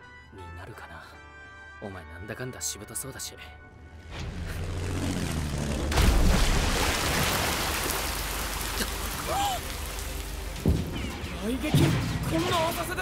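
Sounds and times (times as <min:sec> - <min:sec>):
rushing water-like noise: 0:06.2 - 0:10.6.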